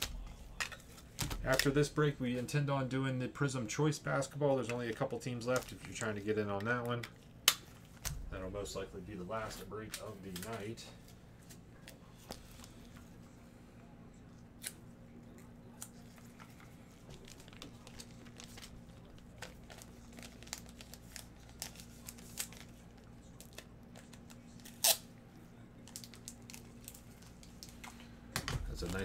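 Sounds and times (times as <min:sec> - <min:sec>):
trading cards rustling: 0:03.8 - 0:13.0, 0:15.8 - 0:25.0, 0:28.6 - 0:29.0.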